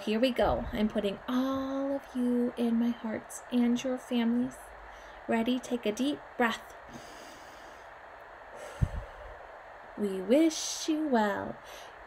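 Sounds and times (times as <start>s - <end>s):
woman breathing in deeply: 4.8s - 5.3s, 6.9s - 9.4s, 11.6s - 12.0s.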